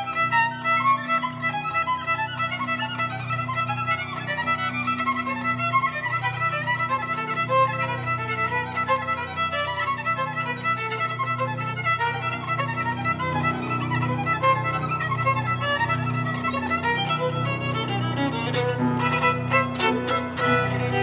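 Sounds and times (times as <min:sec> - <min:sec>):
solo violin fast bowed notes: 0:00.0 - 0:21.0
sustained piano accompaniment: 0:00.0 - 0:21.0.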